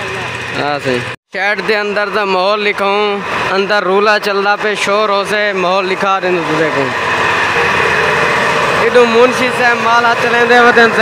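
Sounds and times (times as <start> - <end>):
road roller engine running: 0.0 - 11.0.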